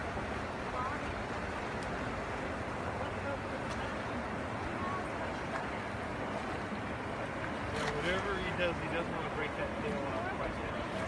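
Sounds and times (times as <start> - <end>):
flowing river water: 0.0 - 11.0.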